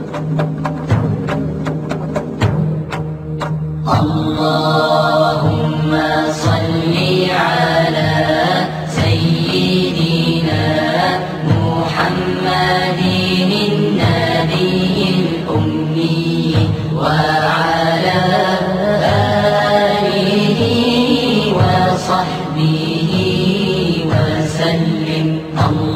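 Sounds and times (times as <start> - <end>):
devotional chant singing: 3.8 - 25.9.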